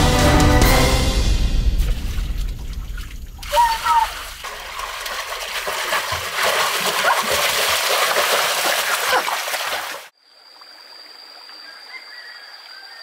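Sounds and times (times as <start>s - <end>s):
water splashing and churning: 1.6s - 10.1s.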